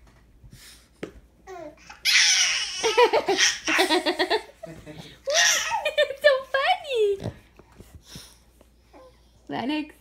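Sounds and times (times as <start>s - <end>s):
baby laughing: 1.8s - 4.5s, 5.2s - 6.2s.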